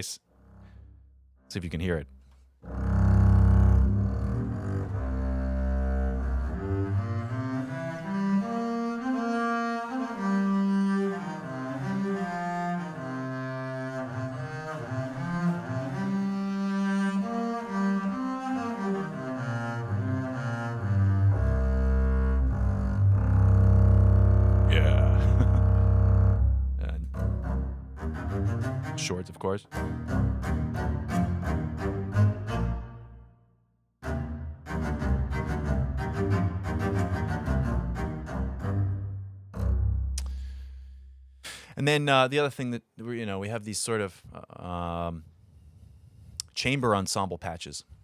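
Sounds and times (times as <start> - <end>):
bowed double bass: 0.0 - 33.3, 34.0 - 42.0.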